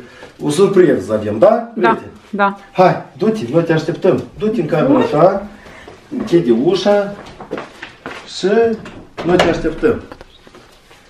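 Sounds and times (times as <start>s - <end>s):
person speaking: 0.4s - 7.3s.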